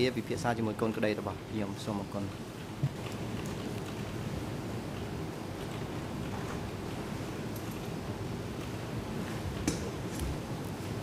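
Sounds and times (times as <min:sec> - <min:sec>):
room noise hiss and rumble: 0:00.0 - 0:11.0.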